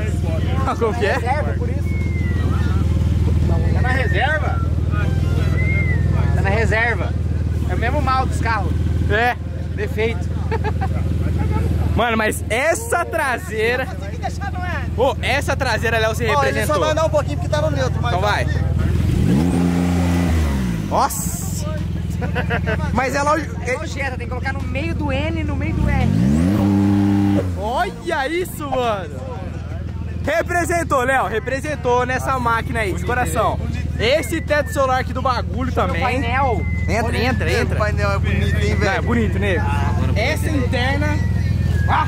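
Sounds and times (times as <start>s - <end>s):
car engine revving: 16.9s - 22.3s, 24.0s - 29.1s.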